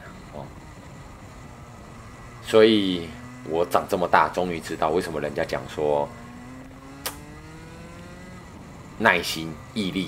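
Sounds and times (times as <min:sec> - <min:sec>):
kart engine accelerating: 0:00.0 - 0:10.0
brief click: 0:07.0 - 0:07.2.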